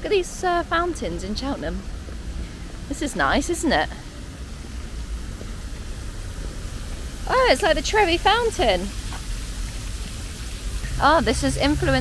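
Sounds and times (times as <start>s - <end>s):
fountain water jets splashing: 0.0s - 12.0s
low steady rumble: 0.0s - 12.0s.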